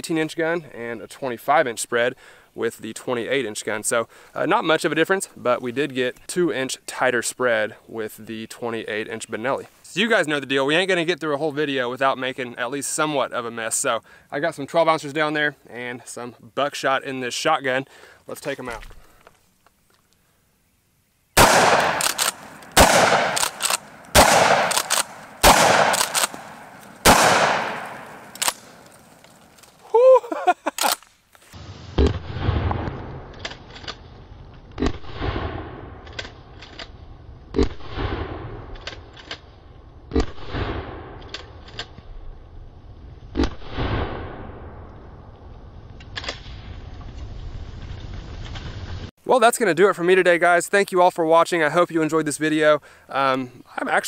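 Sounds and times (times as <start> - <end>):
shotgun shots with echo: 21.4 - 28.8
slowed-down deep gunshots: 21.4 - 28.9, 31.9 - 33.4, 34.7 - 36.1, 37.1 - 38.8, 40.0 - 41.3, 43.3 - 45.7
low rumble: 31.6 - 49.1.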